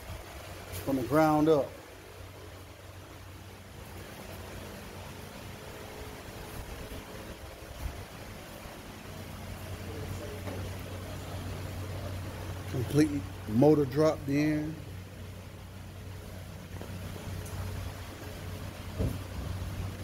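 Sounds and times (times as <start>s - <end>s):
low mechanical hum: 0.0s - 20.0s.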